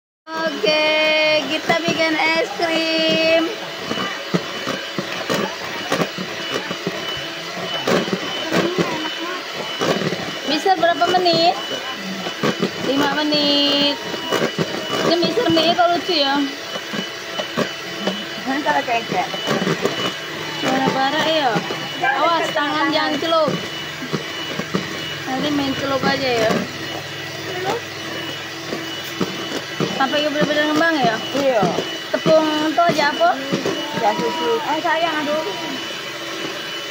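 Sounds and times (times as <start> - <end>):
electric hand mixer running: 0.3 - 36.9.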